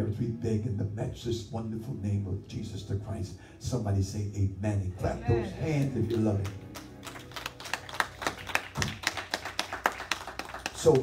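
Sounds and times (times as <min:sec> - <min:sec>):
congregation clapping hands: 0:05.7 - 0:11.0.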